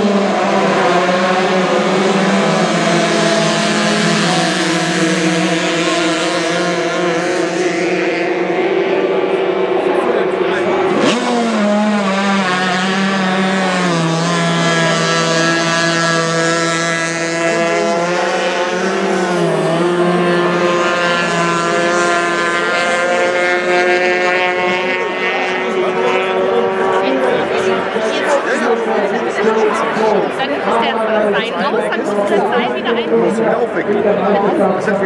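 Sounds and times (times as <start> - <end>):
race boat engines whining: 0.0 - 35.0.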